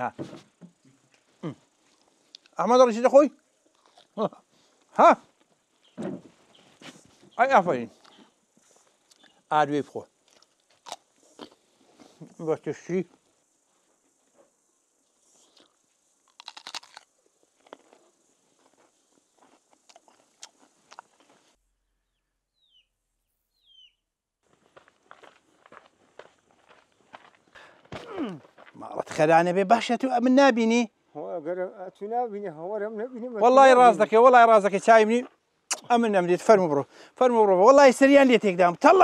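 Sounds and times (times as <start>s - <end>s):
chewing crunch: 3.6s - 5.5s, 10.2s - 12.2s, 15.2s - 21.6s
biting into cucumber crunch: 3.7s - 4.2s, 10.3s - 11.6s, 15.5s - 18.0s, 19.4s - 21.4s
footsteps on dirt path: 5.2s - 7.4s, 24.4s - 29.3s
bird chirps falling in pitch: 22.0s - 24.1s.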